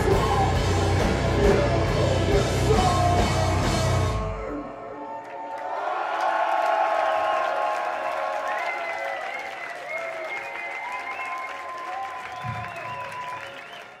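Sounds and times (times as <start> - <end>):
audience applauding and cheering: 0.1 - 14.0.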